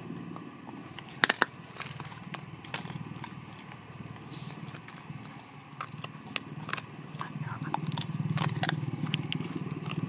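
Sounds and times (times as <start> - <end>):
steady low hum: 0.0 - 10.0
dog teeth cracking on bone: 0.9 - 10.0.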